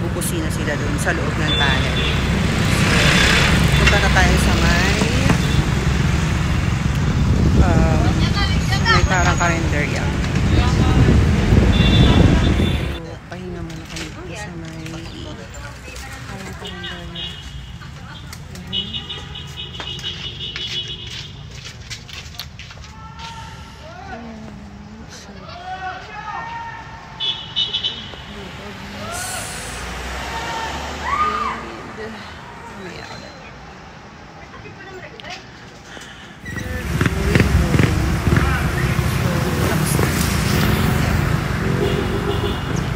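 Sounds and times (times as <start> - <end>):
person's voice: 0.0 - 2.0, 2.6 - 5.6, 7.4 - 17.2, 23.4 - 25.6, 28.3 - 30.0, 36.5 - 41.8
truck passing: 0.0 - 22.6, 27.0 - 42.9
traffic rumble: 0.0 - 42.9
faint voices talking: 22.0 - 41.7.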